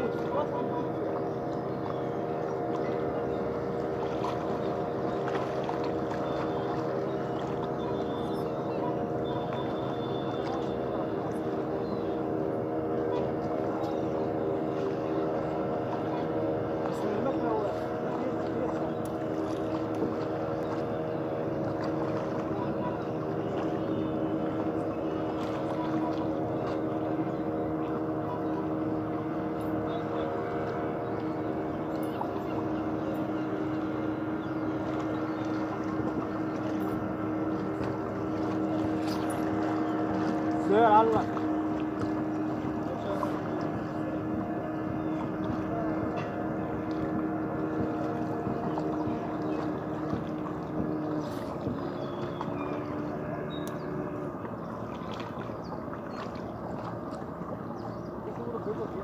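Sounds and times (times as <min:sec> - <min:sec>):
steady engine drone: 0:00.0 - 0:59.0.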